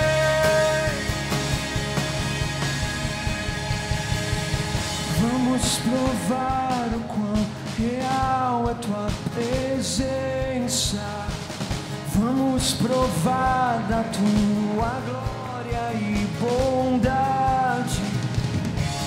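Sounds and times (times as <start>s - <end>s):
man singing: 0.0s - 1.4s, 5.0s - 18.4s
acoustic guitar: 0.0s - 19.0s
bass guitar: 0.0s - 19.0s
drum kit beat: 0.0s - 19.0s.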